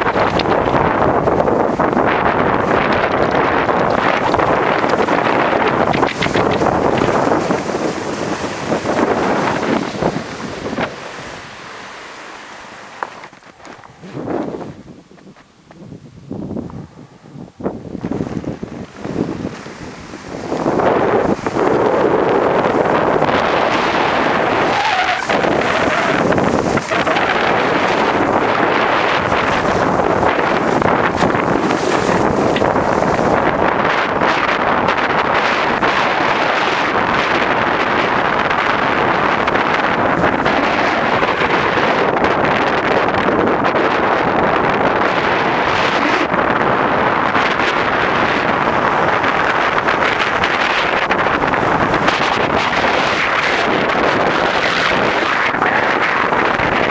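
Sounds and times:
skis running over snow: 0:00.0 - 0:15.8, 0:18.0 - 0:56.9
wind rushing across microphone: 0:00.0 - 0:56.9.

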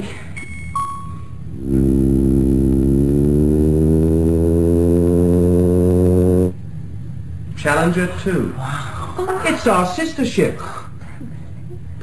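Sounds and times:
low synthesizer drone: 0:01.2 - 0:07.5.

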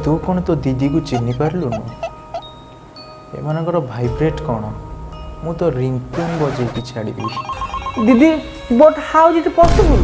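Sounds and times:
music: 0:00.0 - 0:10.0
person speaking: 0:00.9 - 0:02.4
ringtone short beeps: 0:07.2 - 0:08.2.

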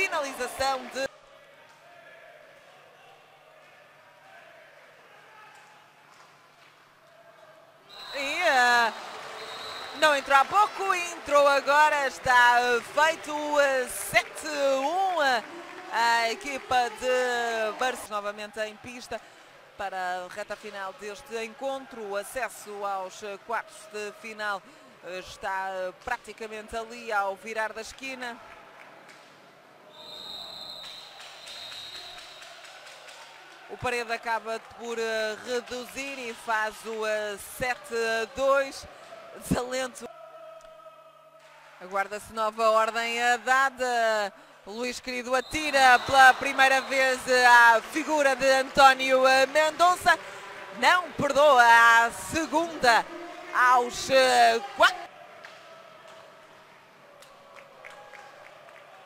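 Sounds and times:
arena crowd noise: 0:00.0 - 0:59.0
high whistle blast: 0:07.9 - 0:10.0.

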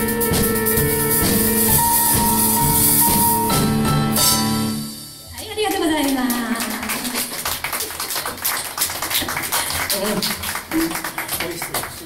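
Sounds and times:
small audience applauding: 0:05.6 - 0:12.0.

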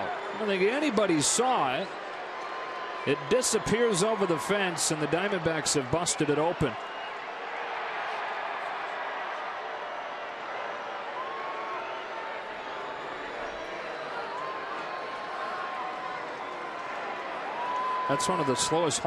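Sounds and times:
murmur of crowd voices: 0:00.0 - 0:07.0.

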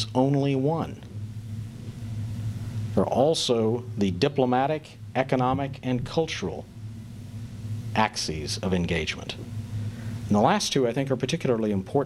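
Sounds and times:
faint hiss: 0:00.0 - 0:12.0
low hum: 0:00.0 - 0:12.0.

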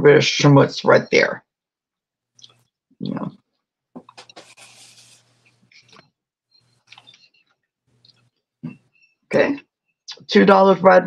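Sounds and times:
soft rustle: 0:04.1 - 0:06.0.

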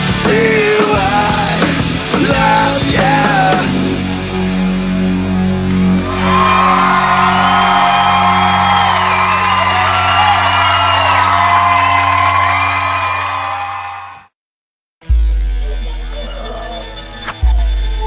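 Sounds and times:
distorted electric guitars and bass: 0:00.0 - 0:13.2, 0:15.0 - 0:18.0
crowd whooping and cheering: 0:05.8 - 0:14.3.

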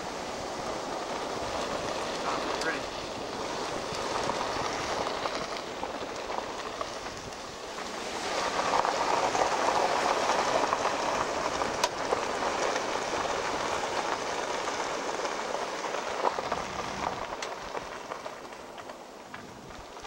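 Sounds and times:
tyres crackling over gravel: 0:00.0 - 0:20.0.

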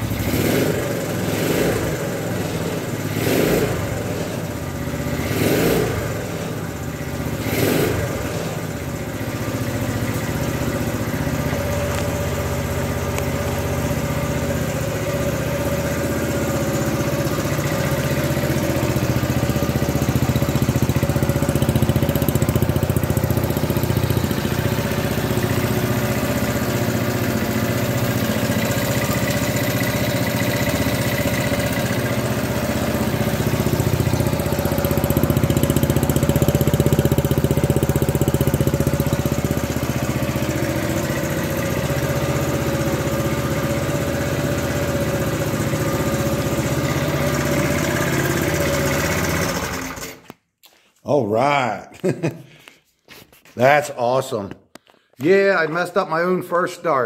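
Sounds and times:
motorcycle engine idling: 0:00.0 - 0:50.0.

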